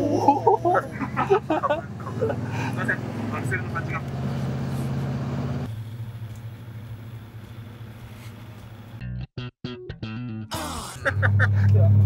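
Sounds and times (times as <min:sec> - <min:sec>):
van engine and road noise: 0:00.0 - 0:09.1, 0:10.5 - 0:12.0.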